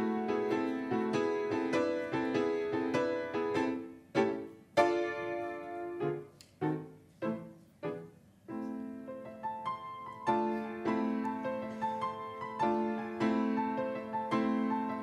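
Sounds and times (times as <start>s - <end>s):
grand piano playing: 0.0s - 15.0s.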